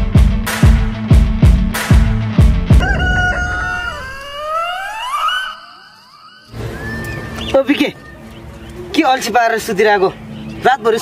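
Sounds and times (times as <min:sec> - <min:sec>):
rooster crowing: 0:02.8 - 0:07.4.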